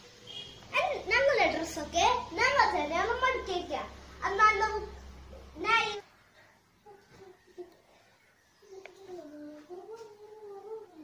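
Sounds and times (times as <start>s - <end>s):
drawn-out wavering voice: 6.8s - 11.0s.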